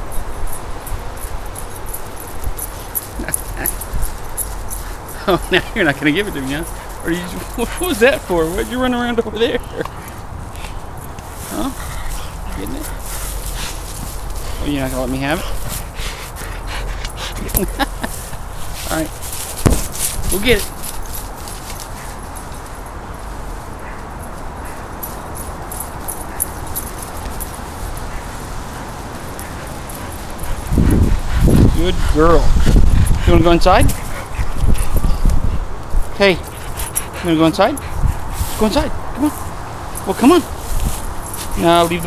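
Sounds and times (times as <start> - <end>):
steady low rumble: 0.0 - 37.1
dog panting: 1.5 - 42.0.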